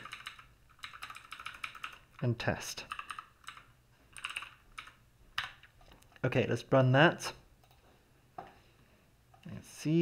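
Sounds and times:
typing on computer keyboard: 0.0 - 2.3, 2.9 - 5.7.

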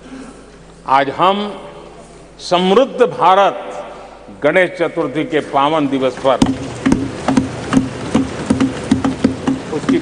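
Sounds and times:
people thumping wooden desks: 6.2 - 10.0.

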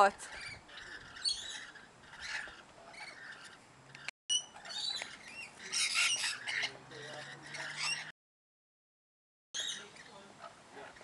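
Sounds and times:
parrots chattering and squawking: 0.0 - 8.1, 9.6 - 11.0.

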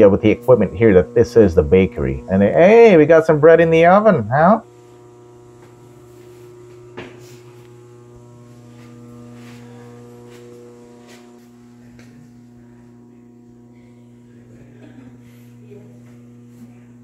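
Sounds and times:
steady electrical hum: 0.0 - 17.0.

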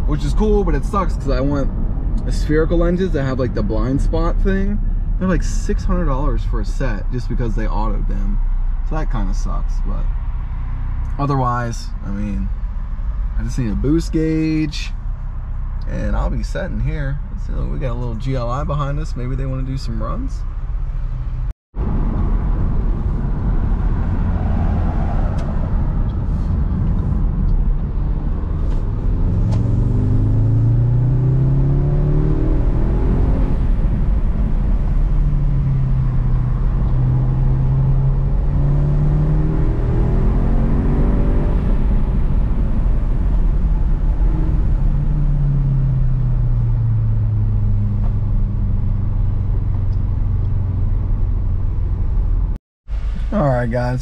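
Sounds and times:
car engine accelerating: 0.0 - 54.0
road noise inside car: 0.0 - 54.0.

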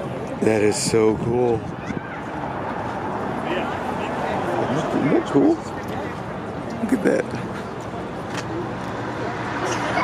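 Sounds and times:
outdoor hubbub: 0.0 - 10.0.

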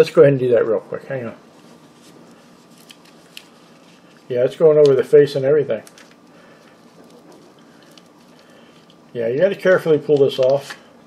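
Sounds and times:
plastic wrap rustling: 1.5 - 9.1.

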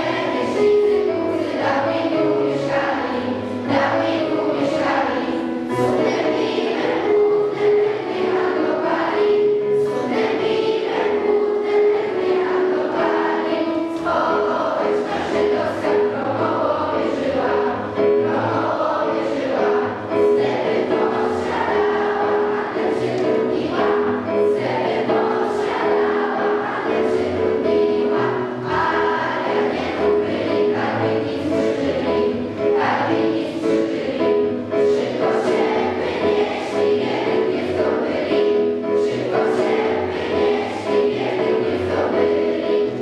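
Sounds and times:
children singing together: 0.0 - 43.0.

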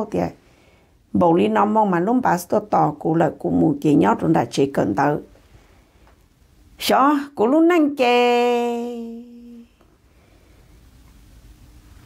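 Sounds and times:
woman humming: 8.7 - 9.8.

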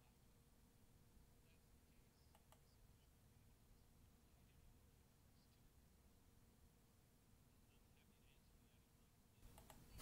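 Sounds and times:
faint clicks: 2.2 - 2.8, 9.4 - 10.0.

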